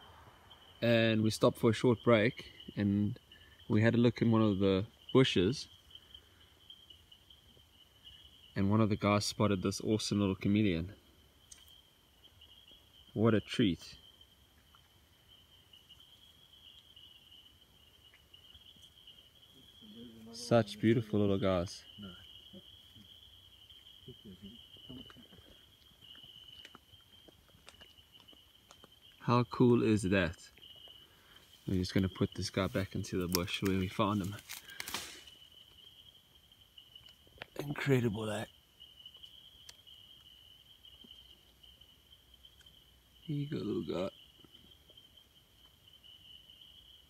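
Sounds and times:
cricket trilling: 0:00.0 - 0:47.0.

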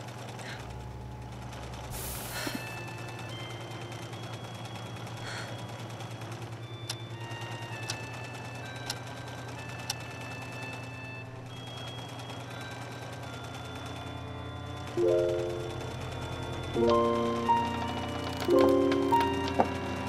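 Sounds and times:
wall clock ticking: 0:14.8 - 0:20.0.

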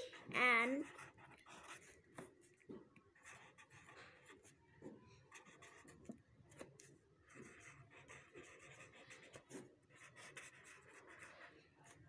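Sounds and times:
pen scratching on paper: 0:00.1 - 0:04.6, 0:05.3 - 0:12.0.

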